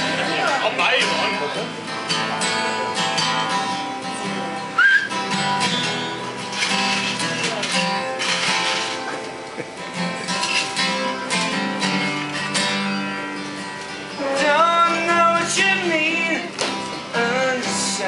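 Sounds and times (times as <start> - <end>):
acoustic guitar strummed: 0.0 - 18.0.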